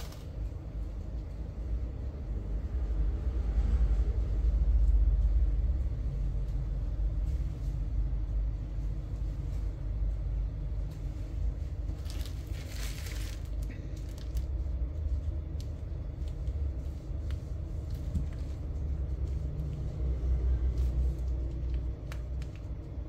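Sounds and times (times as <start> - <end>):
low background rumble: 0.0 - 23.0.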